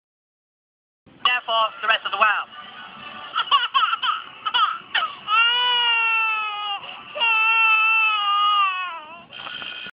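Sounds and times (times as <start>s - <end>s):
cartoon toddler crying: 3.4s - 9.3s.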